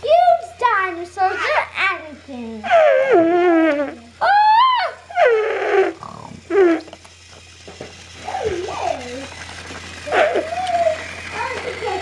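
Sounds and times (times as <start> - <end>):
child making sliding vocal sounds: 2.6 - 6.9.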